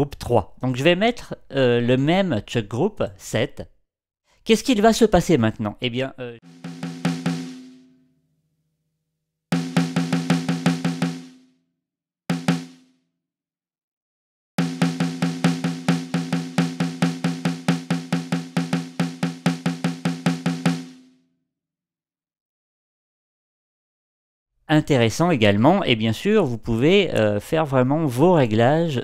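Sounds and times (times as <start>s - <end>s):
snare drum fast runs: 6.5s - 7.8s, 9.5s - 11.4s, 12.3s - 12.8s, 14.6s - 21.0s.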